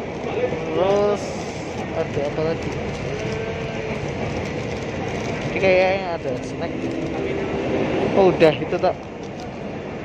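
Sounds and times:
faint train whine: 0.0 - 10.0
train cabin running noise: 0.0 - 10.0.

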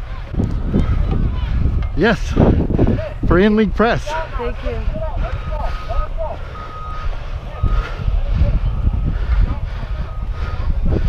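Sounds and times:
back-up alarm beeping: 4.0 - 9.2.

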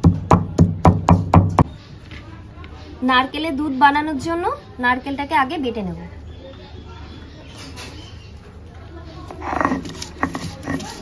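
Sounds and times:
stone roller knocking on stone: 9.4 - 11.0.

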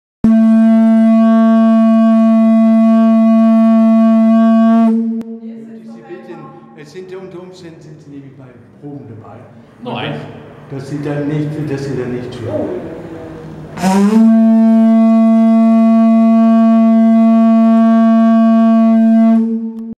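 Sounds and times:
conch shell horn blown: 0.2 - 5.4, 13.5 - 20.0.

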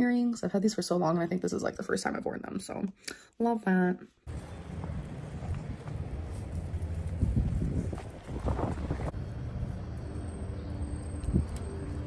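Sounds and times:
wind rumbling on microphone: 4.3 - 12.0.

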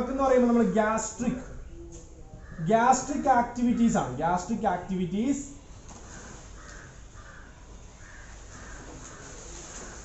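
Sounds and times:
room hum: 0.0 - 10.0
bird harsh calls: 6.0 - 10.0.

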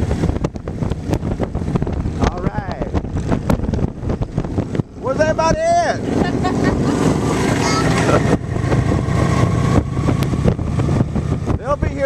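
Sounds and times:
motorcycles riding past: 6.0 - 11.1.

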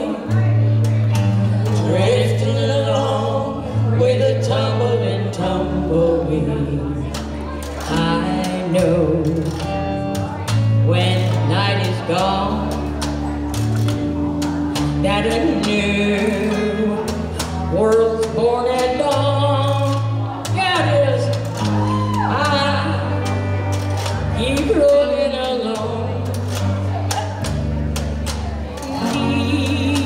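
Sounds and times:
bass notes: 0.0 - 30.0.

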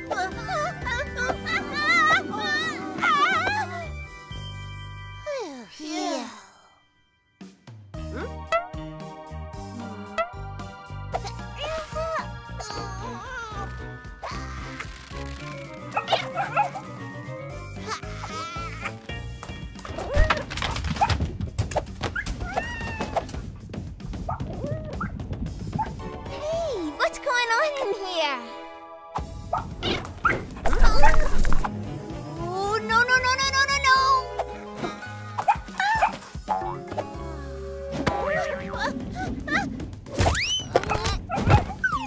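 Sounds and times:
background music: 0.0 - 42.0
cartoon puppy yelping: 15.9 - 16.8, 17.8 - 19.0, 29.6 - 31.4, 35.0 - 37.3, 40.4 - 42.0.

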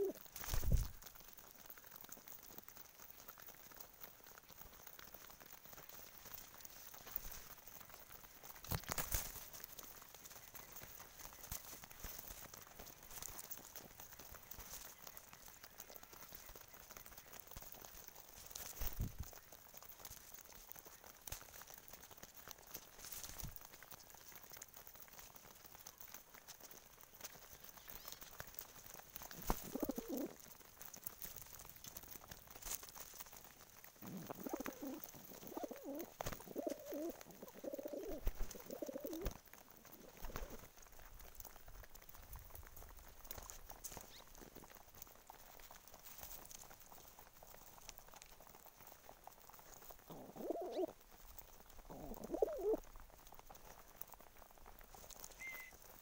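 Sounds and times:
pigeons cooing: 0.0 - 0.8, 29.3 - 30.4, 34.0 - 40.7, 50.1 - 51.0, 51.9 - 52.9
birds pecking at grain: 0.0 - 56.0.

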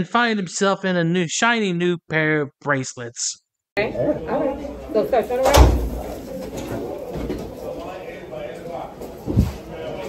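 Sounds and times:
indistinct background voices: 3.8 - 10.0
room murmur: 3.8 - 10.0.

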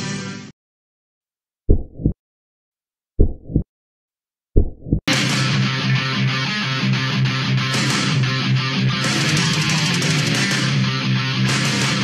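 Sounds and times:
heartbeat thumps: 1.7 - 2.2, 3.2 - 3.7, 4.6 - 5.1.

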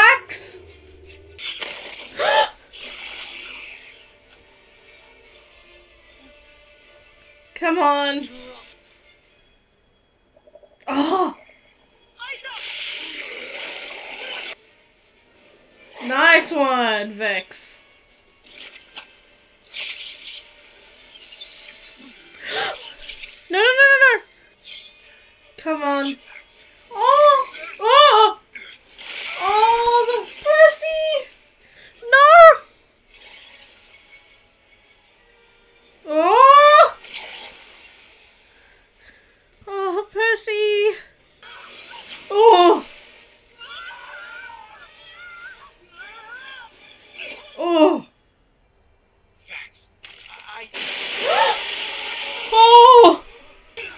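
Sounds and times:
music: 0.0 - 50.2, 50.8 - 53.9
woman yelling: 26.9 - 28.4, 32.0 - 32.6, 36.1 - 37.0, 42.3 - 42.8, 52.6 - 53.2
high-pitched wordless cries: 26.9 - 28.5, 32.0 - 32.7, 36.1 - 37.0, 52.5 - 53.4.

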